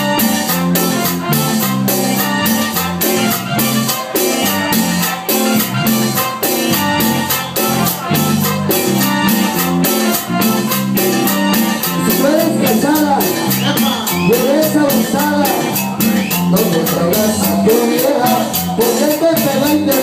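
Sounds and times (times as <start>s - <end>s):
bass line: 0.0s - 20.0s
congas: 0.0s - 20.0s
live cumbia band playing: 0.0s - 20.0s
quick percussion beat: 0.0s - 20.0s
gliding melodic line: 1.3s - 20.0s.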